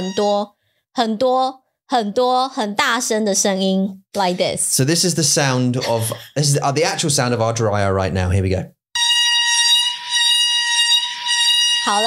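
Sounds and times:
person speaking: 0.0s - 0.4s, 4.2s - 8.7s.

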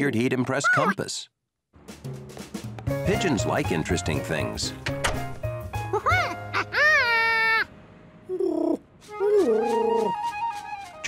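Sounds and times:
cartoon monkey calls: 0.5s - 1.0s, 5.9s - 7.7s.

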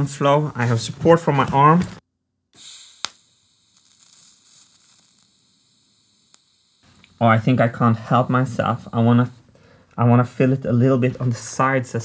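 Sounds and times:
welding arc hiss: 2.5s - 9.6s
welding torch click: 2.6s - 7.2s
faint gas hiss: 2.6s - 10.2s.

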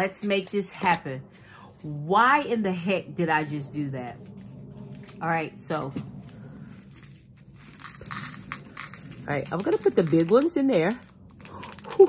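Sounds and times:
plastic packet rustling: 6.9s - 12.0s.

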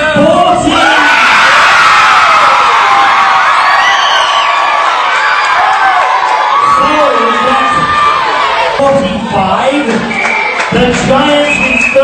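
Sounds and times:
children cheering and shouting: 0.7s - 8.9s.

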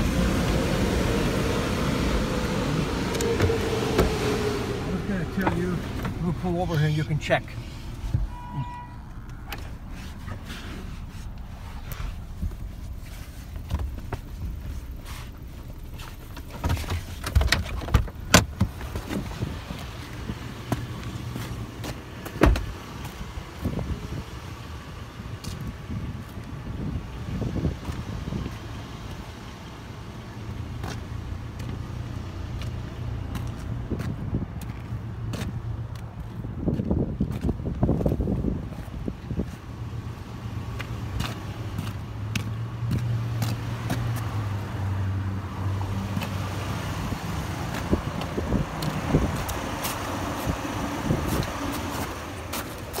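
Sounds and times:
car engine idling: 0.0s - 44.8s, 45.4s - 53.0s
footsteps on wet gritty pavement: 30.8s - 44.8s, 45.8s - 53.0s.

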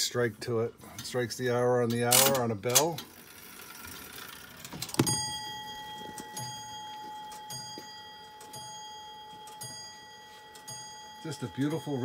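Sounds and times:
clock hammer striking bell: 5.0s - 12.0s.

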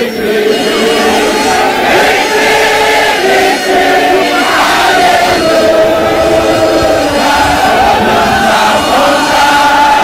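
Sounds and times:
crowd crying out and chanting: 0.0s - 10.0s.

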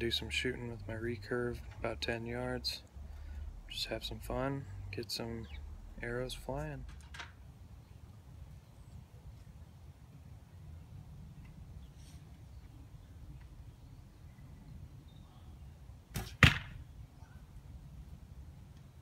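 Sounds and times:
arrow hitting target: 16.1s - 16.8s.

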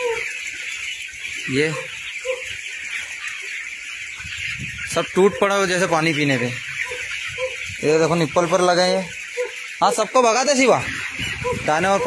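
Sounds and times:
chickens peeping and chirping: 0.0s - 12.0s.

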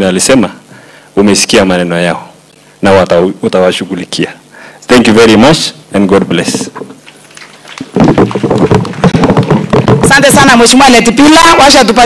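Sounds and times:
audience applauding: 7.0s - 10.4s.

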